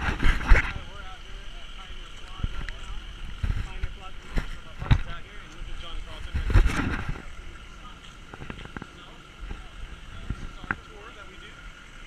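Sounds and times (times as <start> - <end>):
wind buffeting microphone: 0.0 - 0.9, 2.4 - 7.6
faint distant voices: 0.4 - 12.0.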